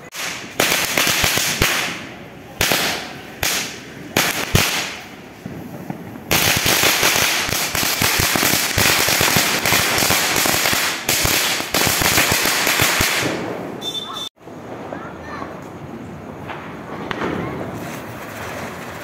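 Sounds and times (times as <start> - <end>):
firecrackers bursting: 0.0 - 19.0.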